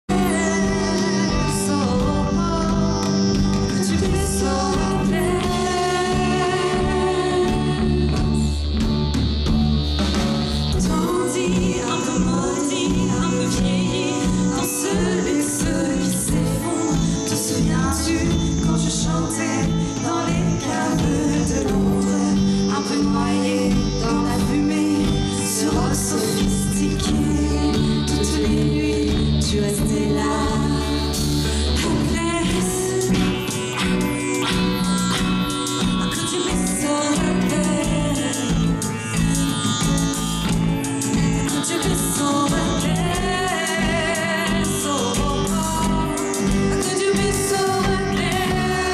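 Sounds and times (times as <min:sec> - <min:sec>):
women singing: 0:00.0 - 0:08.6, 0:10.8 - 0:34.6, 0:35.9 - 0:39.5, 0:41.4 - 0:48.9
drums: 0:00.0 - 0:48.9
electric guitar: 0:00.0 - 0:48.9
live band music: 0:00.0 - 0:48.9
repeating bass line: 0:00.0 - 0:48.9.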